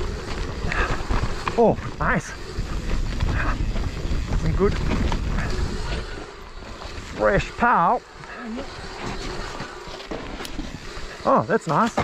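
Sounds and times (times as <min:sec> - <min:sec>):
wind rushing over microphone: 0:00.0 - 0:11.3
bike tyre and frame rattle: 0:00.0 - 0:12.0.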